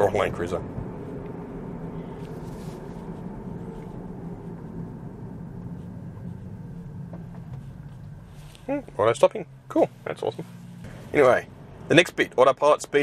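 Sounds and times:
road and tyre noise in car: 0.0s - 13.0s.

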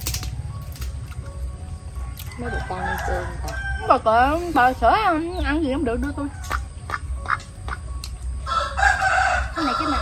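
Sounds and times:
rooster crowing: 2.3s - 4.2s, 8.4s - 10.0s.

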